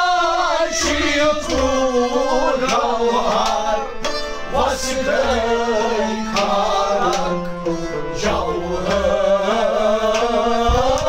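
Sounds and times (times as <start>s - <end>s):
men singing folk song: 0.0s - 11.0s.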